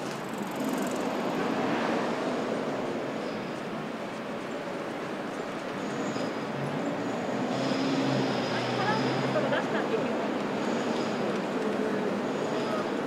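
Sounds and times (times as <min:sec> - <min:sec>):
passers-by talking: 0:08.4 - 0:13.0.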